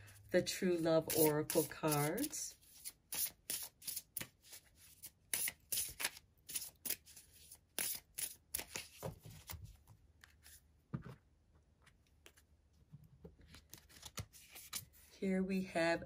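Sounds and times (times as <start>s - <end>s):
cards being shuffled: 1.1s - 11.2s, 13.4s - 15.1s.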